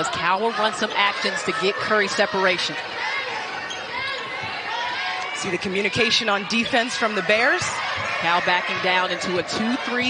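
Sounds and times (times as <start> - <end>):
arena crowd murmur: 0.0 - 10.0.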